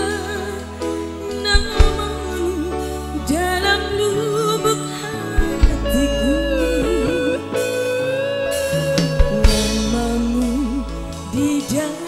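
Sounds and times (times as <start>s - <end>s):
bass and drums: 0.0s - 2.6s, 5.4s - 12.0s
electric guitar wavering melody: 0.0s - 12.0s
person singing: 0.0s - 12.0s.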